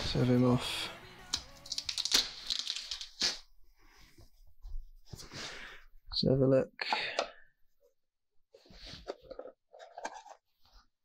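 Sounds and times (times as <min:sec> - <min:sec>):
tape peeling: 0:01.3 - 0:03.5.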